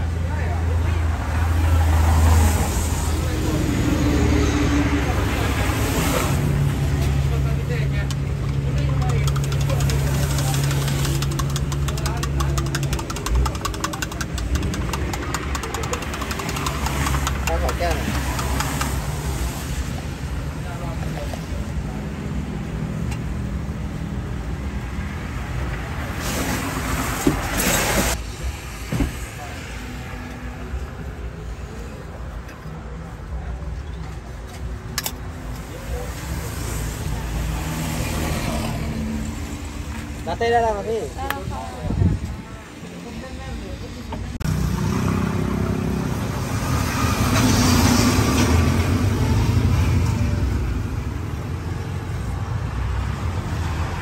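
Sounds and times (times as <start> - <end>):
engine humming: 3.1 - 20.2.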